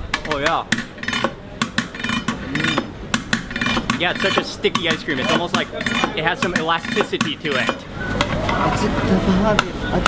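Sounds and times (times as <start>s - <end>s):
metal paddle clacking on tubs: 0.0s - 8.8s.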